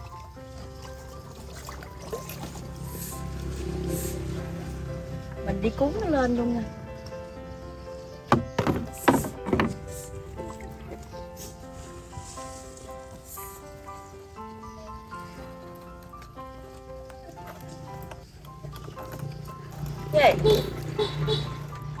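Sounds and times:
soft melodic background music: 0.0 - 22.0
knocks on small boat: 8.3 - 10.0.

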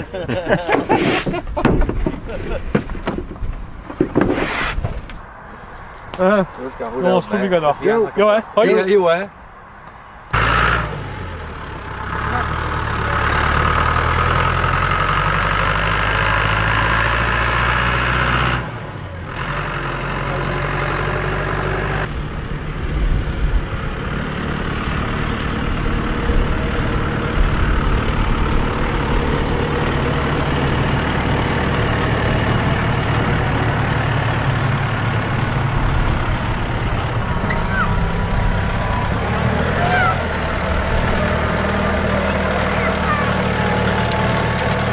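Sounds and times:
tractor diesel engine under load: 10.3 - 44.9.

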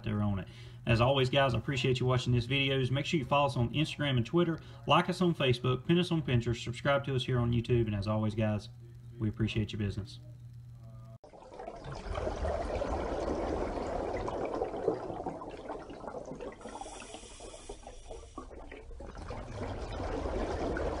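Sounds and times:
rushing bubbling water: 11.2 - 21.0.

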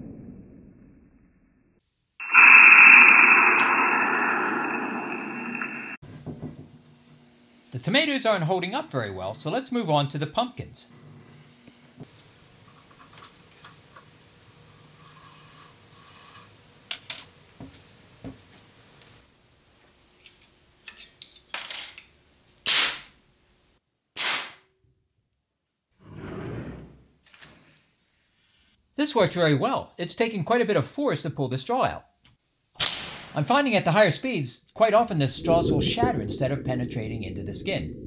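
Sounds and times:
brief rush of noise: 2.2 - 6.0.

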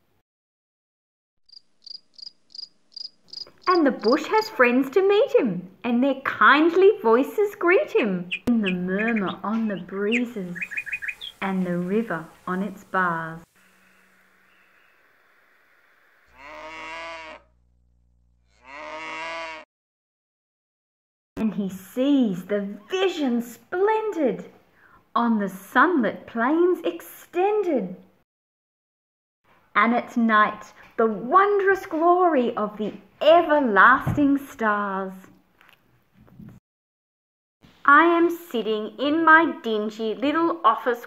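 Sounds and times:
cricket chirping: 1.5 - 4.2
cow mooing: 16.3 - 17.6, 18.4 - 19.6.

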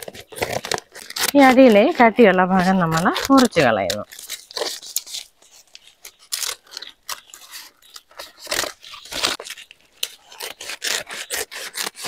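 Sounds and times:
scissors snipping plastic sack: 0.0 - 5.0
stiff plastic rustling: 0.0 - 12.0.

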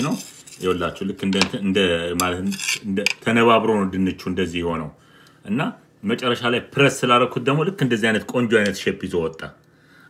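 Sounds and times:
knife scraping ceramic plate: 2.2 - 3.2.

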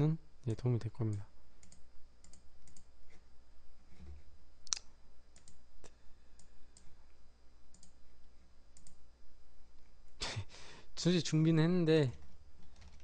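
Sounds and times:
computer mouse clicks: 1.1 - 2.9, 4.7 - 5.6, 7.7 - 8.0, 8.8 - 9.0.

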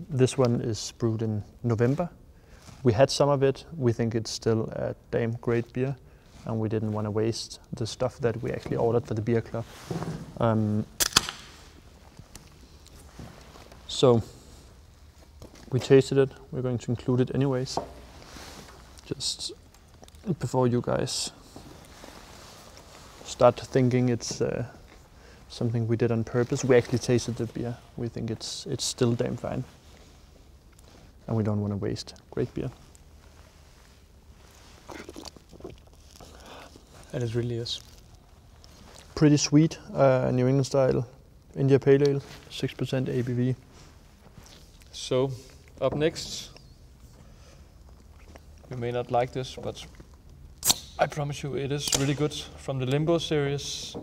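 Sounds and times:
can ring-pull crack: 11.0 - 11.5, 50.6 - 51.0
mouth smacks and clicks: 34.8 - 36.7.

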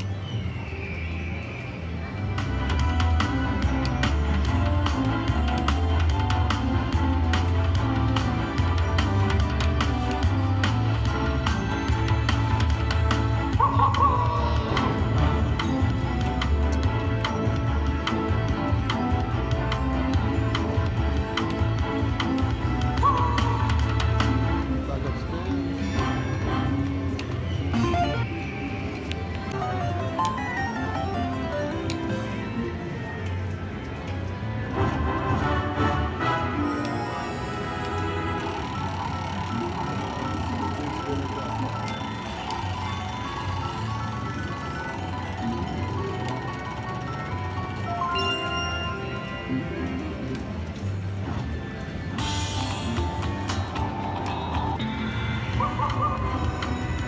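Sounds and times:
low casino hum: 0.0 - 57.0
slot machine game music: 2.4 - 33.8, 34.7 - 51.2.

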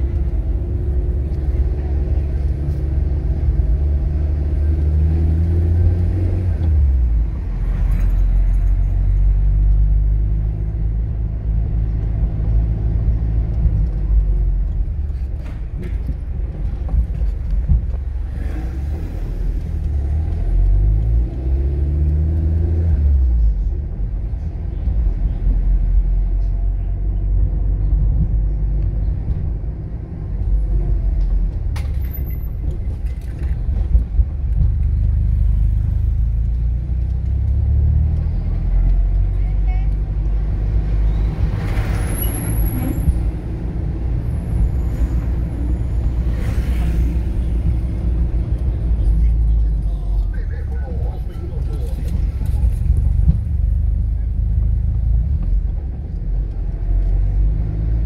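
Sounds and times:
car engine: 0.0 - 58.0.

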